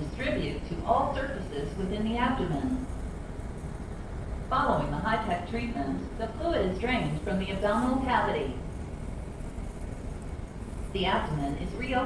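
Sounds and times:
woman narrating: 0.0 - 2.9, 4.5 - 8.6, 10.9 - 12.0
low room noise rumble: 0.0 - 12.0.

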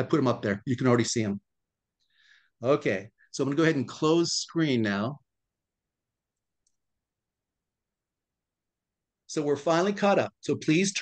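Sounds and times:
man speaking: 0.0 - 1.5.

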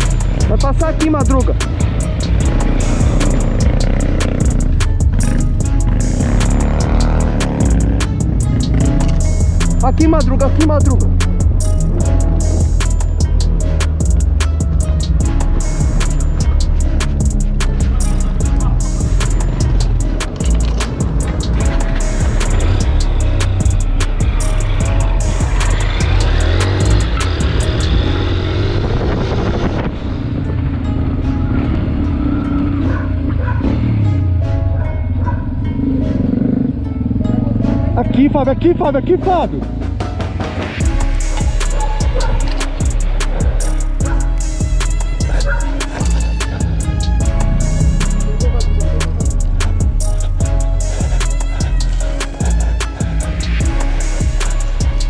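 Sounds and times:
fast percussion ticks: 0.0 - 28.0, 40.6 - 55.0
music with heavy bass line: 0.0 - 55.0.

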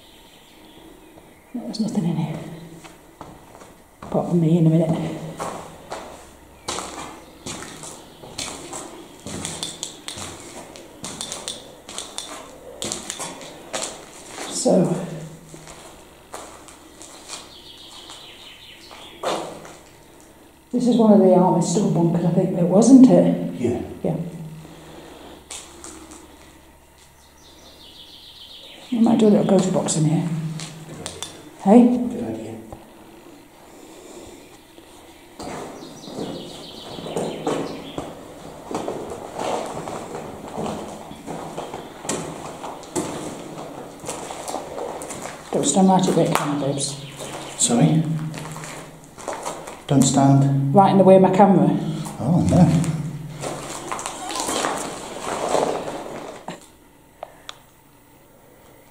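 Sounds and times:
light footsteps on debris: 2.3 - 14.6, 15.2 - 18.3, 35.4 - 49.9.

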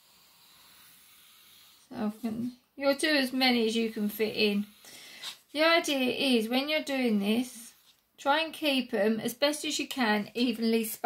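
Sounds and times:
pencil scratching on paper: 0.0 - 6.0.

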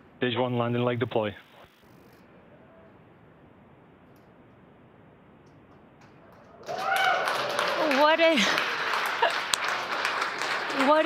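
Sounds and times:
faint steady hiss: 0.0 - 6.1.

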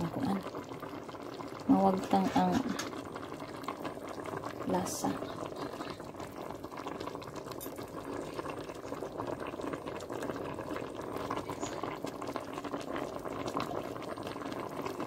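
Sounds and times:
broth boiling and bubbling: 0.0 - 15.0.

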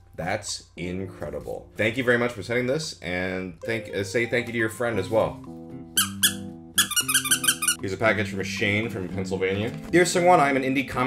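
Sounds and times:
rubber squeaker squeaking: 6.0 - 7.8.

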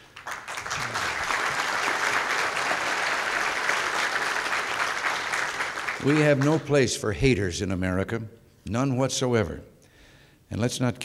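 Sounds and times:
audience applauding: 0.0 - 6.8.

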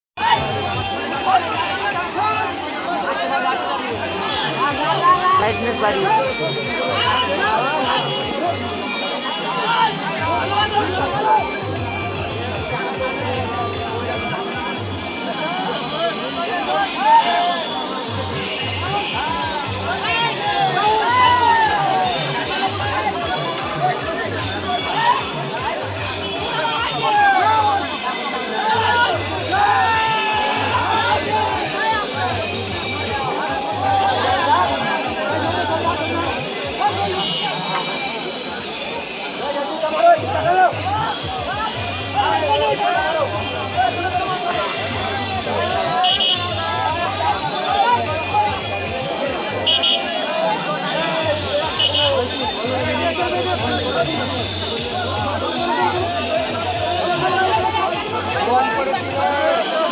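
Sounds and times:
crowd voices talking and calling out: 0.1 - 59.9.

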